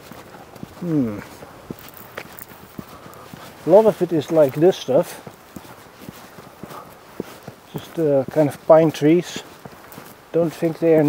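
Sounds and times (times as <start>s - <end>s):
faint steady background: 0.0s - 11.0s
footsteps on forest path: 0.0s - 11.0s.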